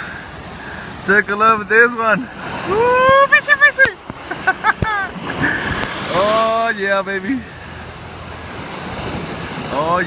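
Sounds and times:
breaking surf: 0.0s - 10.0s
man exclaiming excitedly: 2.7s - 4.0s.

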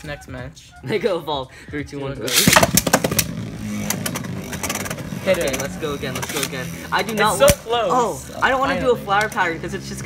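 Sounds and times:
spinning tops whirring: 2.3s - 10.0s.

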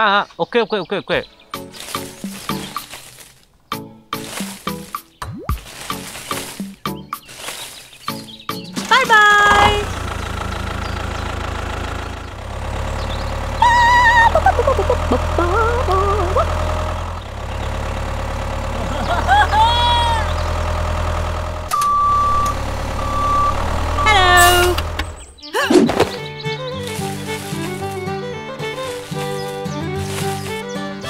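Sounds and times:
music: 1.4s - 3.0s, 3.6s - 9.6s, 26.0s - 31.0s
tractor engine putter: 8.6s - 19.6s, 20.2s - 30.8s
short beeps: 21.7s - 24.8s.

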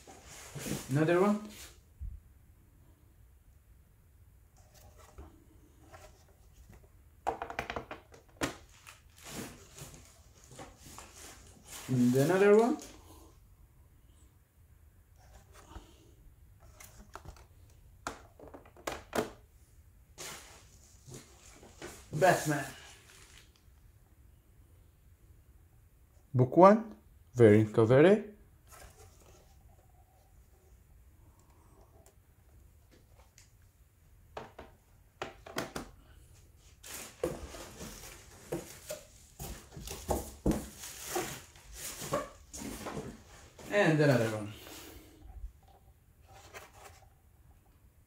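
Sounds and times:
plastic slabs knocking and clattering: 7.2s - 8.6s, 34.4s - 35.9s.

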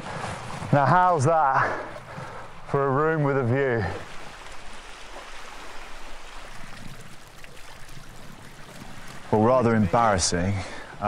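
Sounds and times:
small waves lapping over stones: 0.0s - 11.0s.

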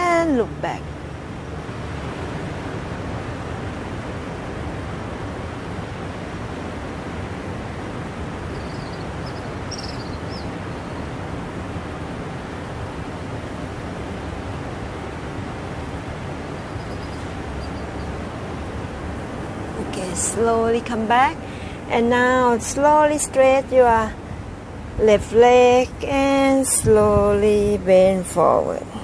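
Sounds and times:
faint high chirps: 8.5s - 11.0s, 16.6s - 18.1s.

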